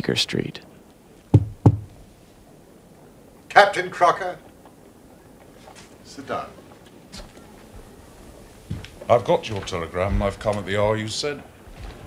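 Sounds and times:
knocks on a door: 1.3s - 1.9s.

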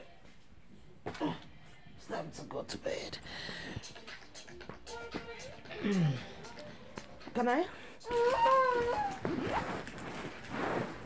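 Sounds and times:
fabric rustling: 8.2s - 11.0s.

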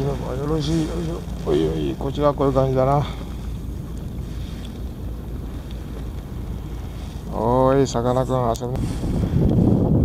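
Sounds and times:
water ticking against hull: 0.0s - 9.6s
wind rumble on microphone: 0.0s - 10.0s.

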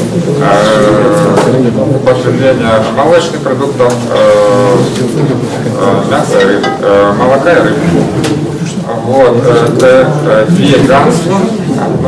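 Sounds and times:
man speaking indistinctly: 5.7s - 7.9s.

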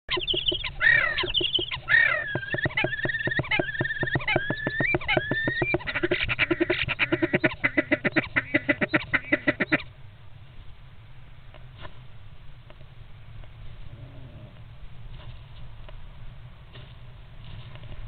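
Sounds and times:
starlings harsh whistled calls: 0.1s - 9.8s.

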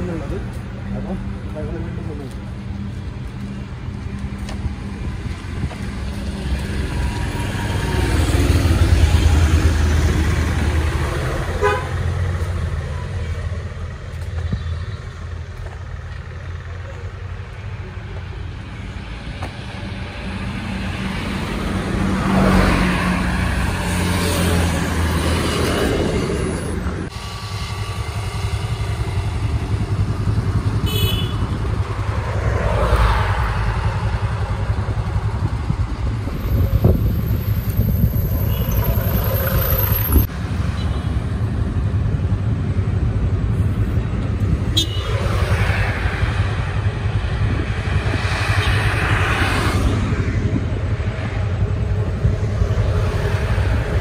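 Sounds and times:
road traffic passing: 0.0s - 54.0s
vehicle horn toot: 11.6s - 12.0s, 30.8s - 31.6s, 44.7s - 45.2s.

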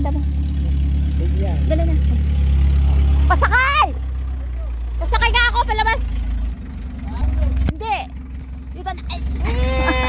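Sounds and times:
truck engine idling: 0.0s - 10.0s.

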